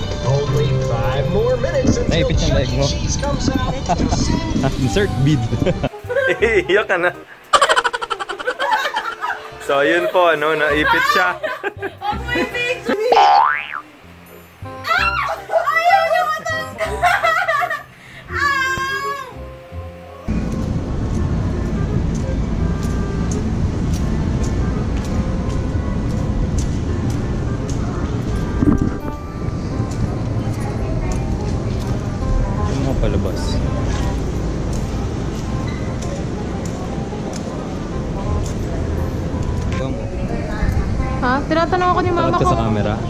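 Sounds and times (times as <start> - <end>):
girl laughing: 5.6 - 6.7, 7.5 - 9.5, 10.7 - 13.5, 16.1 - 18.6
low rumbling noise: 20.3 - 42.4.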